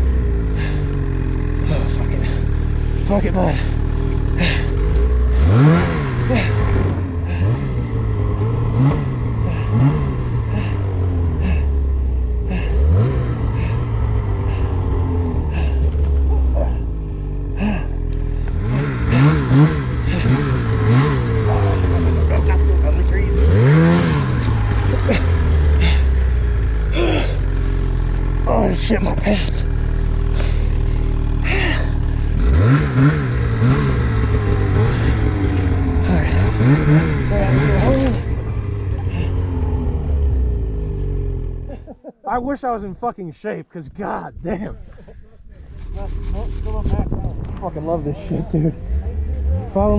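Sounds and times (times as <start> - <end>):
snowmobile engine revving: 0.0 - 43.5, 45.6 - 49.9.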